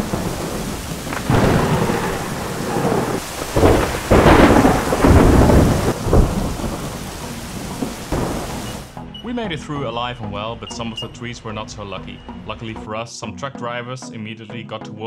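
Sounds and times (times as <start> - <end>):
rain and wind on windscreen: 0.0 - 8.9.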